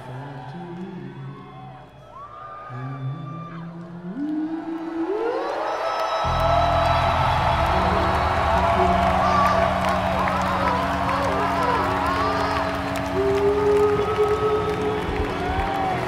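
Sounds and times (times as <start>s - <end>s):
crowd whooping and cheering: 0.0s - 16.0s
live band music: 6.5s - 16.0s.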